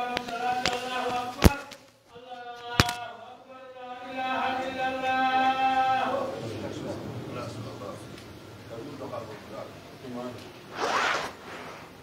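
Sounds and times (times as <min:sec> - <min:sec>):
loud rasping scrape: 0:10.7 - 0:12.0.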